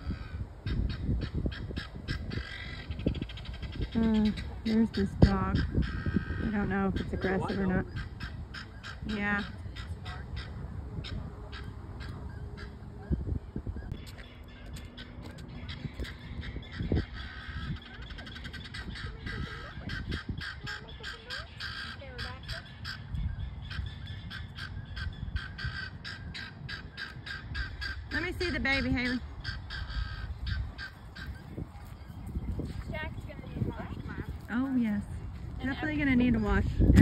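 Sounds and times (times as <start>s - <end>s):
guinea fowl calling: 0.0s - 34.7s
wind rumble on microphone: 0.0s - 37.0s.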